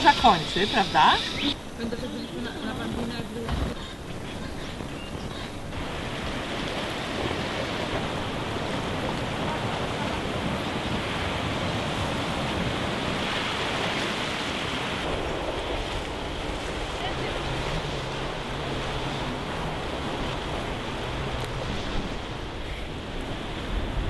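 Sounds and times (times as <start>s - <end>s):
wind on microphone: 0.0s - 24.0s
waves washing over rocks: 2.7s - 24.0s.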